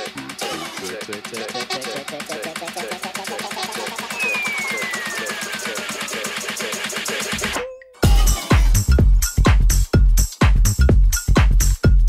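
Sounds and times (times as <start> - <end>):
electronic dance music: 0.0 - 12.0
falling synth sweep: 4.0 - 6.6.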